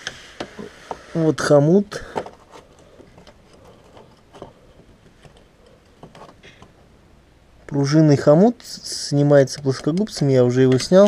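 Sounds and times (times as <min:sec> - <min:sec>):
low background noise: 0:00.0 - 0:11.0
hand tools clicking and knocking: 0:09.4 - 0:11.0.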